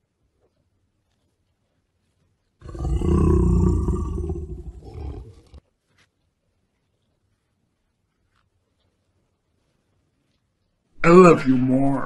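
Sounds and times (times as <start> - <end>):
dog growling: 2.6 - 5.6.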